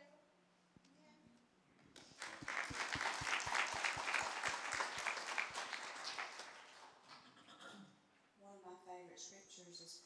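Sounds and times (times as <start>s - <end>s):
crowd applauding: 2.0s - 7.3s.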